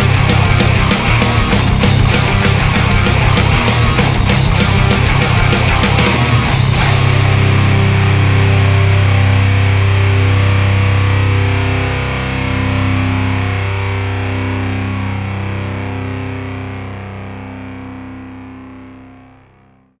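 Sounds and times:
distorted electric guitar chord: 0:00.0 - 0:19.8.

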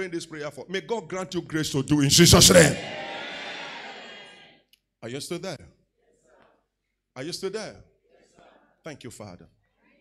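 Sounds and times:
man's amplified shout reverberating: 0:01.6 - 0:03.1.

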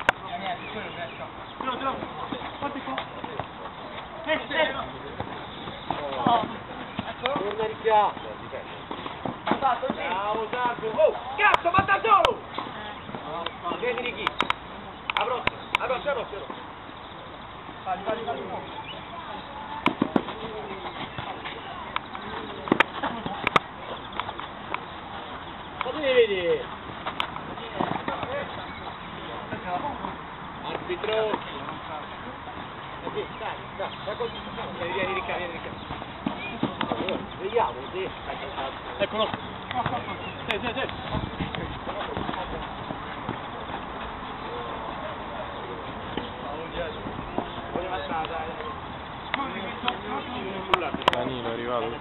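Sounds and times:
background noise: 0:00.0 - 0:52.0
distant players' voices: 0:00.0 - 0:52.0
steady outdoor hiss: 0:00.0 - 0:52.0.

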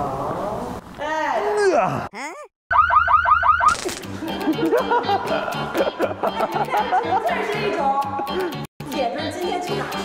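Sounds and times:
alarm-like chirp: 0:02.7 - 0:03.8.

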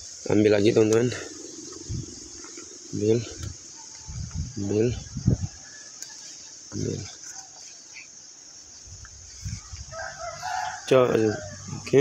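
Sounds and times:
steady high hiss: 0:00.0 - 0:12.0
rooster crowing: 0:09.5 - 0:12.0.

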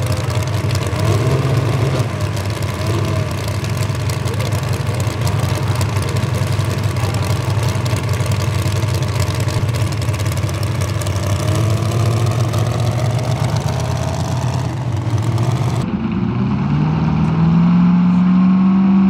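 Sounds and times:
truck engine idling: 0:00.0 - 0:16.4.

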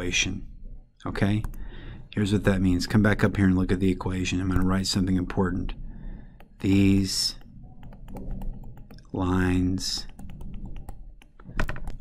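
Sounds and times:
stylus tapping on touchscreen: 0:06.4 - 0:09.2, 0:09.8 - 0:12.0.

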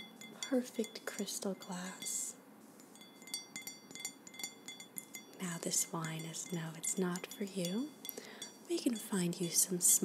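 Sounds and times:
fingernails tapping crystal glass: 0:00.0 - 0:09.7.

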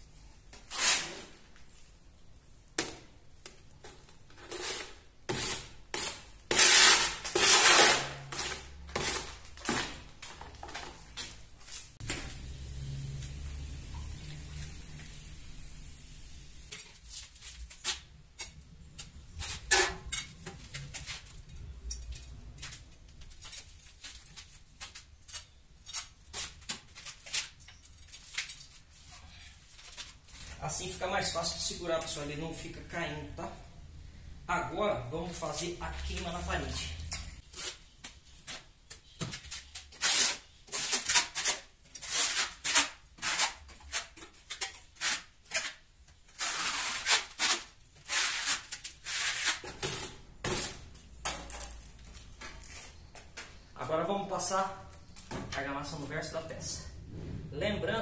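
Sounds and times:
mixing tool scraping a bucket: 0:04.3 - 0:10.0.

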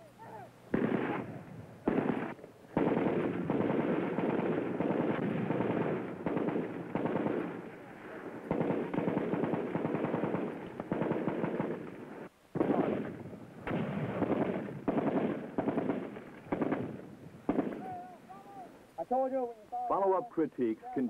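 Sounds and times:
automatic weapons fire: 0:00.7 - 0:07.7, 0:08.5 - 0:18.0.

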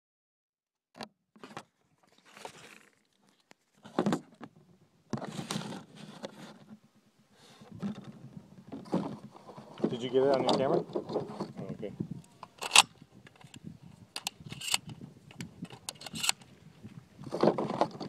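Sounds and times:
rustling noise: 0:01.4 - 0:06.8, 0:07.4 - 0:12.2, 0:13.2 - 0:18.0.

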